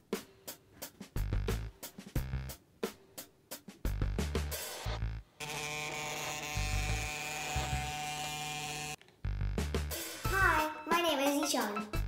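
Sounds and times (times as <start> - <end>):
vibration motor buzzing: 5.4 - 9.0.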